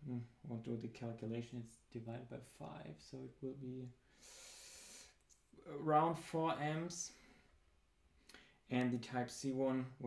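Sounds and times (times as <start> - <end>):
man speaking: 0.0 - 4.0, 5.6 - 7.3, 8.7 - 10.0
man breathing in: 4.0 - 5.2, 8.2 - 8.6.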